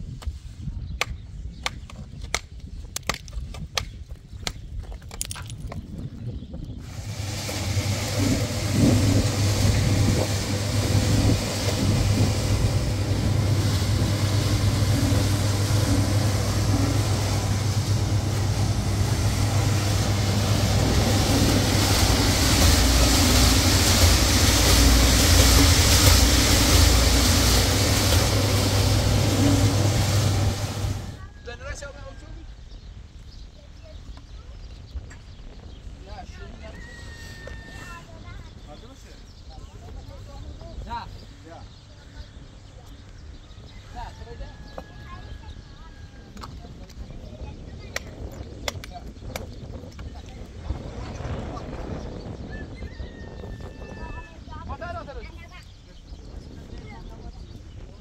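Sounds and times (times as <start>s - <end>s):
cement mixer running: 6.8s - 31.3s.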